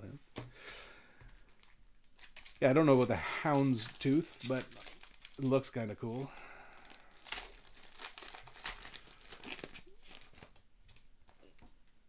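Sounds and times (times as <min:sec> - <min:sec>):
foil wrapper crinkling and tearing: 0:01.5 - 0:10.6.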